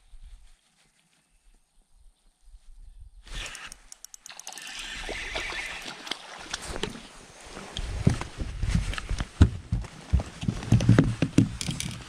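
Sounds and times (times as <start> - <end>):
fishing reel clicking: 3.4 - 5.3, 11.6 - 12.0.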